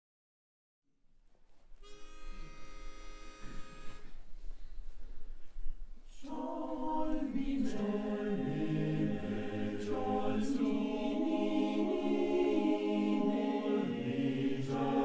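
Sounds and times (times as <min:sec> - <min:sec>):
male choir singing a cappella: 0:06.2 - 0:15.0.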